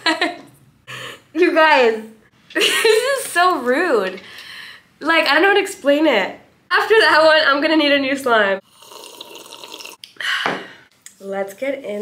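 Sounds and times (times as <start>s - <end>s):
woman slurping a drink: 8.7s - 10.0s.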